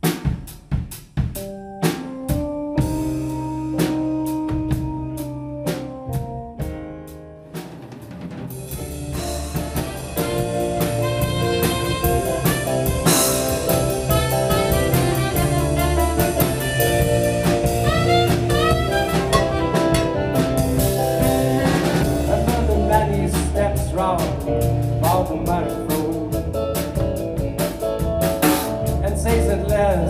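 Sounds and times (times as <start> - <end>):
drum kit with cymbals: 0.0 - 30.0
live rock band playing: 1.2 - 30.0
electric keyboard chords: 1.3 - 30.0
gliding lead melody: 8.5 - 30.0.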